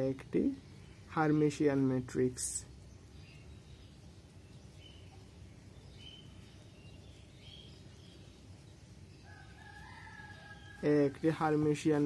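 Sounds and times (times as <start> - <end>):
man speaking: 0.0 - 2.8, 10.8 - 12.0.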